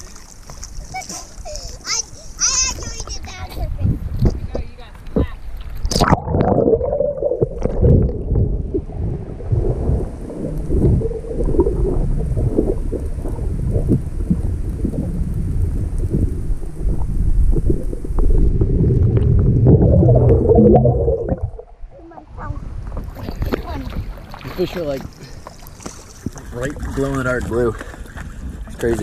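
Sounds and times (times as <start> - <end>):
muffled underwater sloshing: 0.0 - 29.0.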